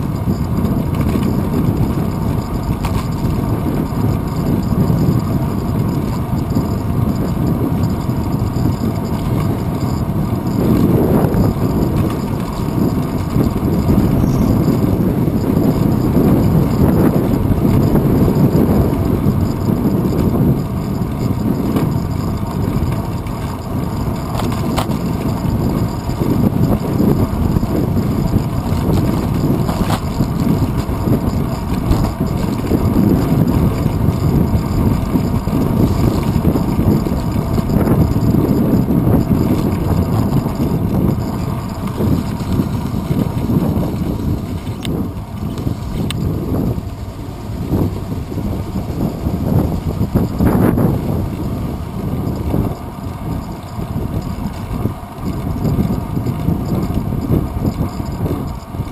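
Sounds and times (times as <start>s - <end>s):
road and traffic noise: 0.0s - 58.9s
wind buffeting microphone: 0.0s - 58.9s.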